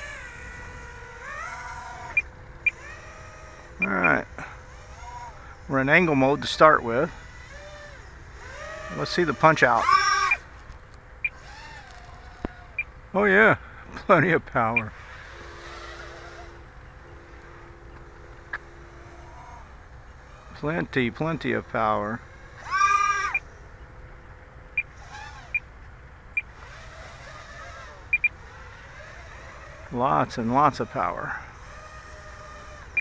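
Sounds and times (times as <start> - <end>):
distant drone motors whining: 0.0 - 33.0.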